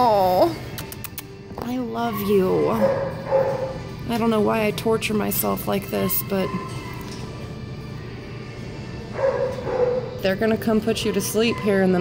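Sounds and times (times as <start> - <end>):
dog barking: 2.8 - 3.8, 9.2 - 10.2.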